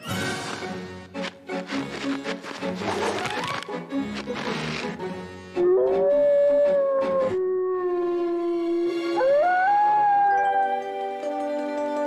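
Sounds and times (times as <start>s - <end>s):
background music: 0.0s - 12.0s
cartoon wolf howling: 5.6s - 11.0s.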